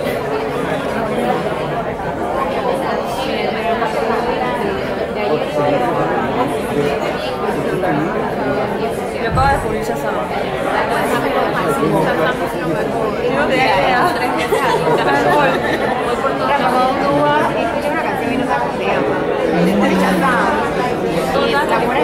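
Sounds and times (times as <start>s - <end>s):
many people talking at once: 0.0s - 22.0s.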